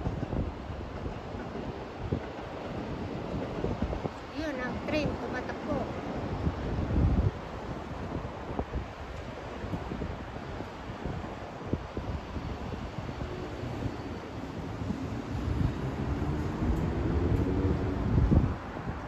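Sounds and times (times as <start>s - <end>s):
distant city traffic hum: 0.0s - 19.0s
wind buffeting microphone: 0.0s - 19.0s.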